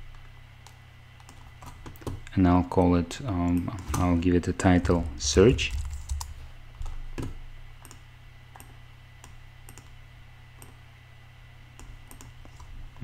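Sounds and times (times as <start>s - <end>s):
steady low hum: 0.0s - 13.0s
computer mouse clicks: 7.2s - 10.0s, 10.6s - 10.8s, 11.8s - 12.7s.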